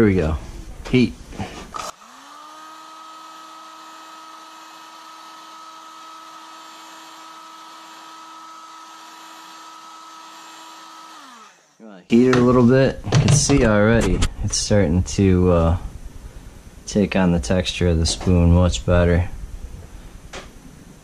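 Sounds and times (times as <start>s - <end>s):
heat gun fan humming: 1.7s - 13.7s.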